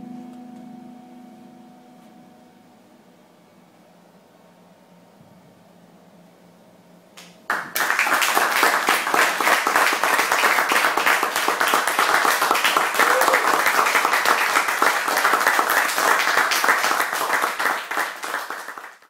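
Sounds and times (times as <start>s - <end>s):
audience applauding: 7.2s - 19.0s.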